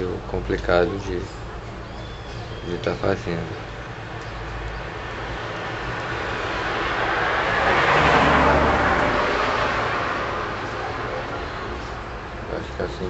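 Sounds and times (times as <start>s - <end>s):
vehicle driving past: 4.6s - 12.2s.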